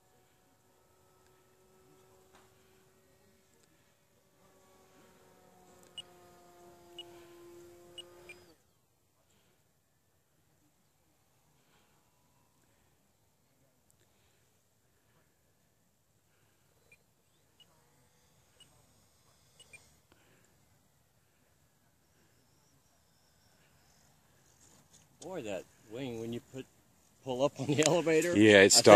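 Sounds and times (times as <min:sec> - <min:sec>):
model airplane motor hum: 0:00.0 - 0:08.6, 0:16.2 - 0:26.5.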